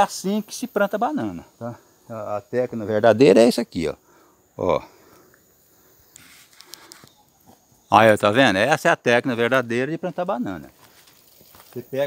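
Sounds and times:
high insect drone: 0.0s - 12.0s
rustle in vegetation: 5.0s - 8.4s, 9.2s - 12.0s.

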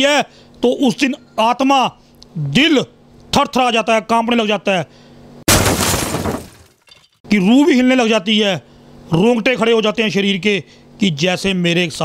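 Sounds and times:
glass shattering: 5.5s - 7.2s.

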